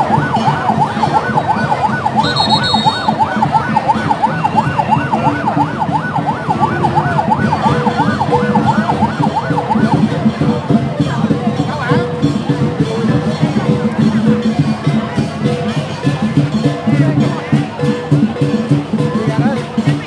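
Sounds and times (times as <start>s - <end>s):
electronic siren yelping: 0.0s - 10.2s
large crowd noise: 0.0s - 20.0s.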